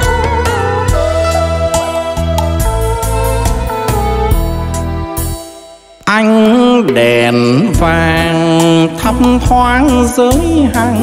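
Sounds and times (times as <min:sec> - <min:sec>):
solo melody with pitch bends: 0:00.0 - 0:06.3
live band instrumental music: 0:00.0 - 0:11.0.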